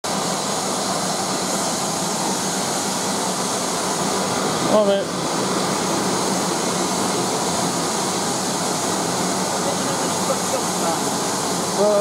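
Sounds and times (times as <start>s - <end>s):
steam locomotive hissing steam: 0.1s - 12.0s.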